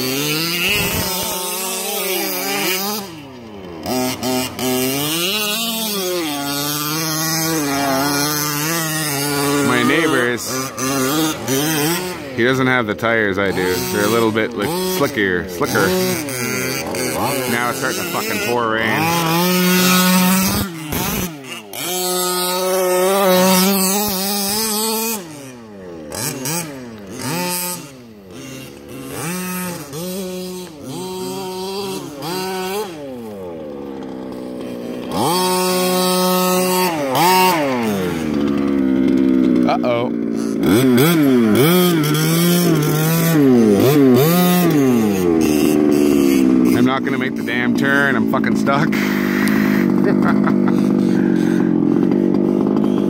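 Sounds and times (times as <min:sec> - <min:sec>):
toy truck motor revving: 0:00.0 - 0:53.0.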